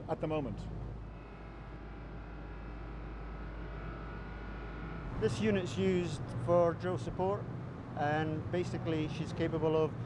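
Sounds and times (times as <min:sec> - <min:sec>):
machinery low hum: 0:00.0 - 0:10.0
faint whining tones: 0:00.7 - 0:07.8.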